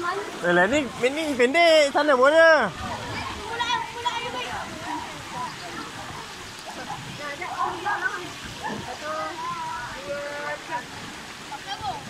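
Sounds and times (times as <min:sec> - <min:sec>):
running and splashing water: 0:00.0 - 0:12.0
children shouting and playing: 0:02.7 - 0:12.0.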